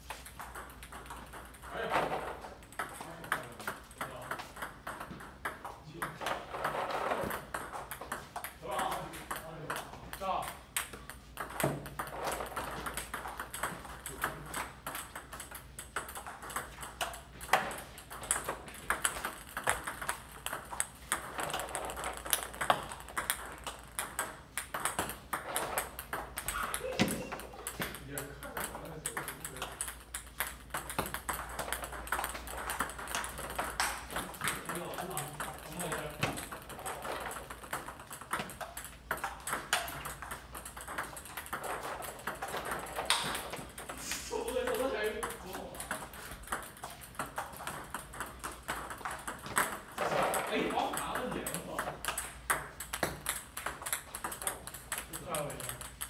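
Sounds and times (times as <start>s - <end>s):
ping-pong ball clicks: 0.0s - 56.0s.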